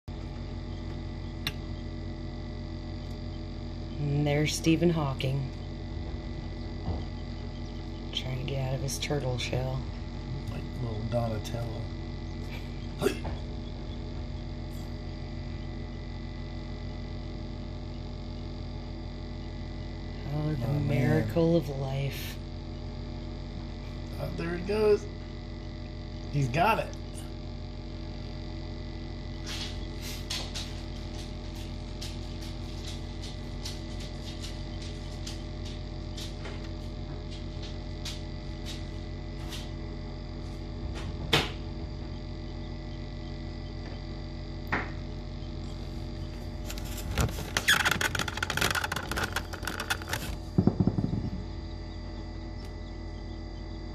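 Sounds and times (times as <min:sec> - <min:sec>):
incubator electrical hum: 0:00.0 - 0:53.9.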